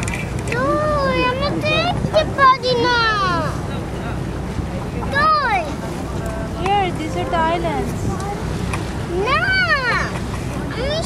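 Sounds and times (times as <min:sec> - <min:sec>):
boat engine rumble: 0:00.0 - 0:11.0
wind buffeting microphone: 0:00.0 - 0:11.0.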